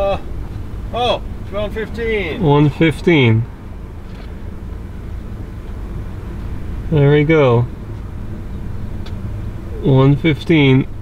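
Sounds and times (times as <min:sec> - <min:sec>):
low rumble and hum: 0:00.0 - 0:11.0.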